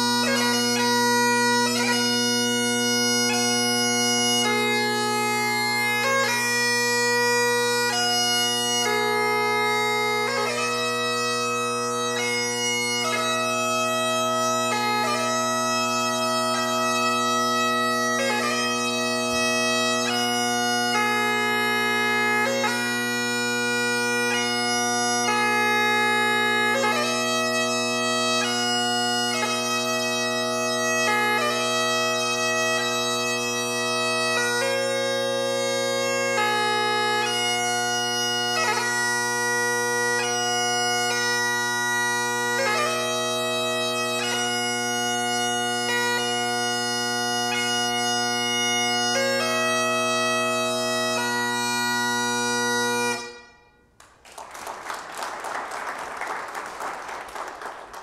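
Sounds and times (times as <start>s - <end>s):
bagpipe playing slow melody: 0.0s - 54.0s
audience applause: 54.0s - 58.0s.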